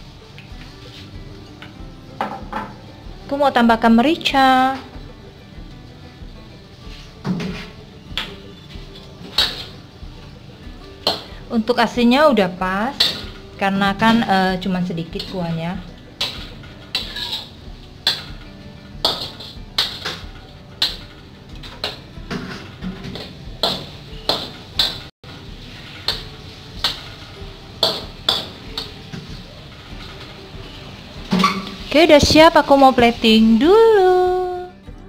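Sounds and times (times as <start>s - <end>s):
metal spatula scraping a wok: 8.6s - 10.4s, 12.9s - 14.3s, 16.1s - 32.0s.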